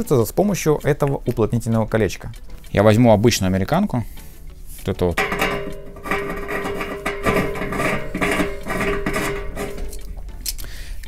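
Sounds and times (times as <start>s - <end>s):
metal-on-metal rasp: 5.2s - 10.4s.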